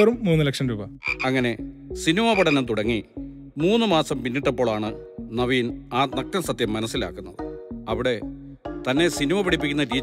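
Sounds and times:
man speaking: 0.0 - 4.5.

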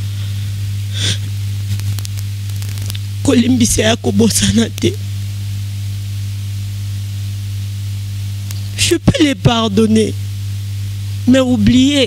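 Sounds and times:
electrical mains hum: 0.0 - 12.0
sound system hiss: 0.0 - 12.0
woman talking: 3.2 - 5.0, 8.8 - 10.2, 11.2 - 12.0.

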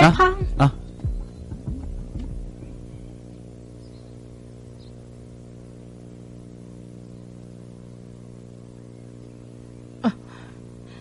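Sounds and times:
low hum of several tones: 0.0 - 11.0.

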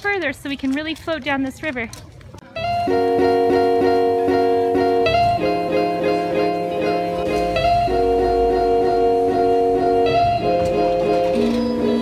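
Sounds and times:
guitar background music: 2.6 - 12.0.

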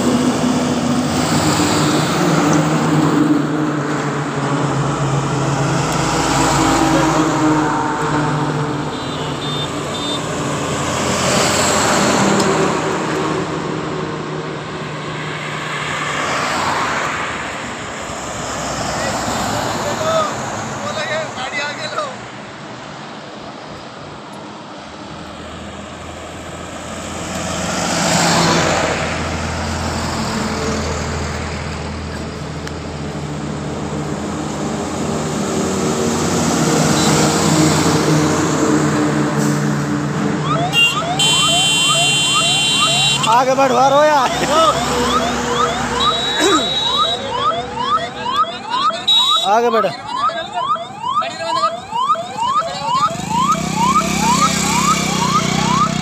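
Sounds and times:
car and truck engines humming: 0.0 - 56.0
heavy vehicles passing: 0.0 - 56.0
tyre noise of highway traffic: 0.0 - 56.0.

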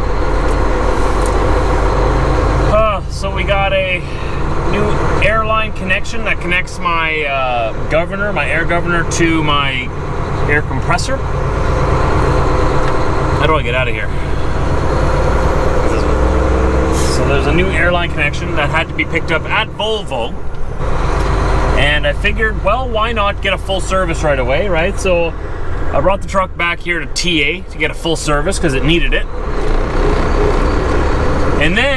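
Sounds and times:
truck diesel engine running: 0.0 - 31.9.

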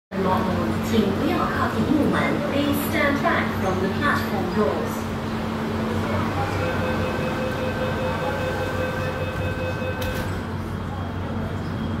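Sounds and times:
low station and train hum: 0.1 - 12.0
train door warning tone: 6.2 - 11.1
doors shutting with a thud: 9.9 - 10.6.

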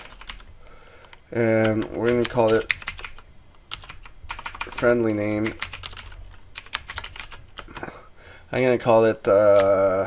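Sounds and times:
keyboard typing: 0.0 - 7.9, 9.5 - 9.8.

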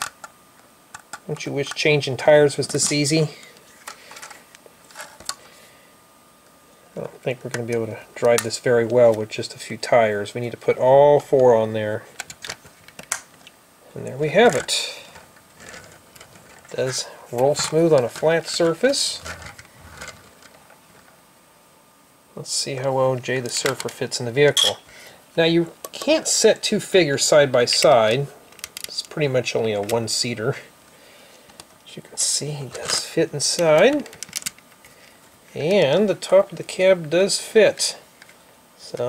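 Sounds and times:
room hiss: 0.0 - 39.0.

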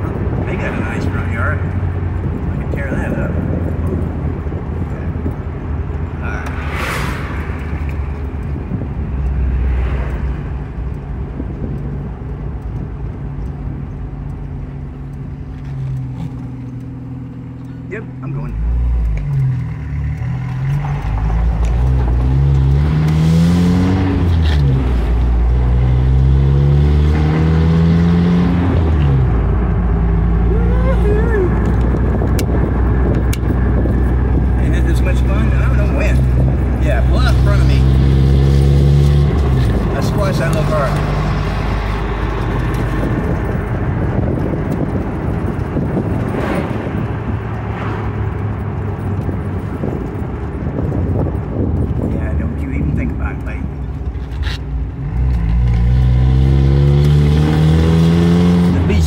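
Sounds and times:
car engine idling and accelerating: 0.0 - 59.0.

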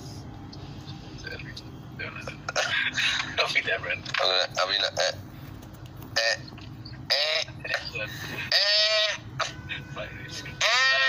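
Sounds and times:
man's nasal bleat-like cry: 10.5 - 11.0.

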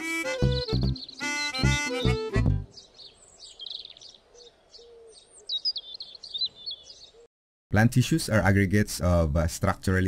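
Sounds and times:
songbirds chirping: 0.0 - 7.3.

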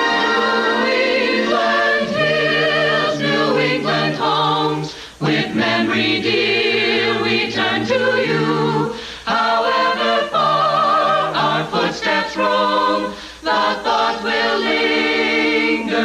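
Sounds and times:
mixed choir singing in harmony: 0.0 - 16.0.

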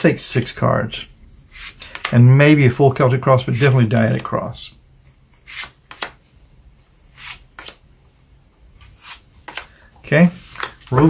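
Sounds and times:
cards swishing and flicking: 5.3 - 6.3, 7.0 - 7.8, 8.8 - 11.0.

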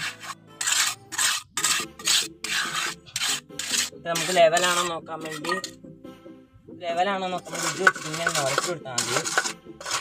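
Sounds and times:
trowel scraping wet mortar: 0.0 - 5.8, 7.3 - 10.0.

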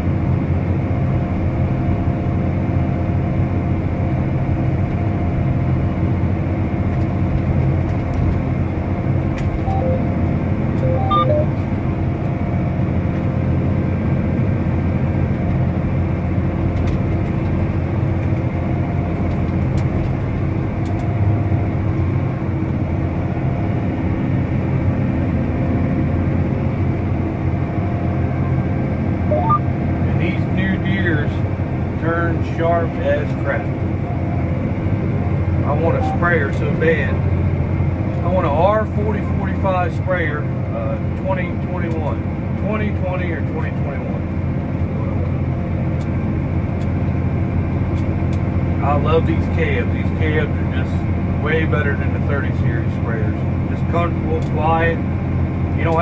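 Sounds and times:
tractor engine droning: 0.0 - 56.0
faint short tones: 9.6 - 10.2, 10.8 - 11.6, 29.3 - 29.6.

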